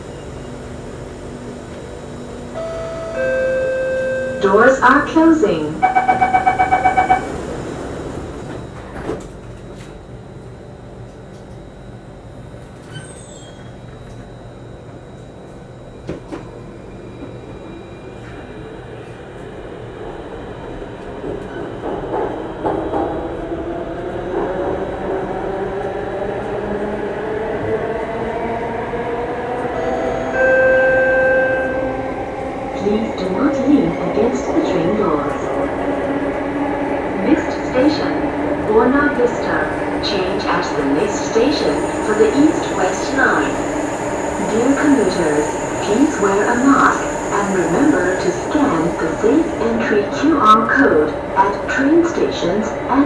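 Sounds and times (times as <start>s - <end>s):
train rumble: 0.0s - 53.0s
door-closing beeps: 5.8s - 7.4s.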